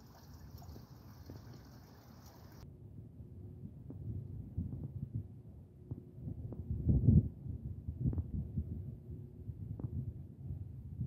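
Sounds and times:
wind buffeting microphone: 0:03.7 - 0:11.0.

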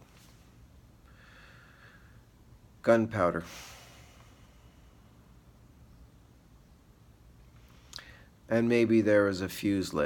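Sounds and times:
faint breath through the nose: 0:01.1 - 0:02.3, 0:07.5 - 0:08.4.

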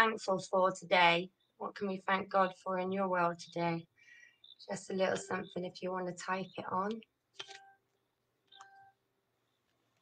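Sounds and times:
short electronic beeps: 0:07.4 - 0:07.9, 0:08.5 - 0:09.0.

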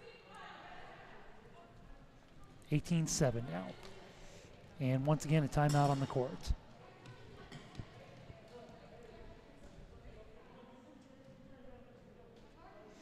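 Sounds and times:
distant voices in a gym: 0:00.0 - 0:13.0.

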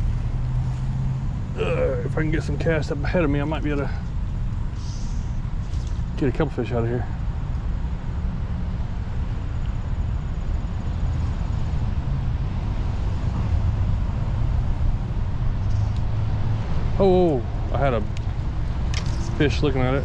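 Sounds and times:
low outdoor background rumble: 0:00.0 - 0:20.0.

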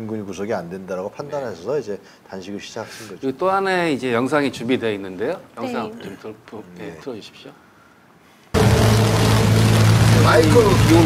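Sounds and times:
loud low hum: 0:08.6 - 0:11.0
rain hiss: 0:08.6 - 0:11.0.

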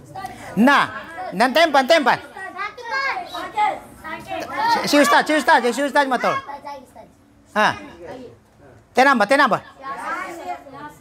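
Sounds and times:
boys calling out: 0:00.2 - 0:08.4.

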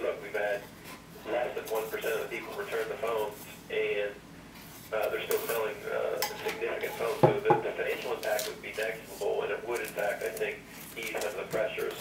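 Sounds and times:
man's voice from tv: 0:00.0 - 0:04.3, 0:04.9 - 0:12.0.

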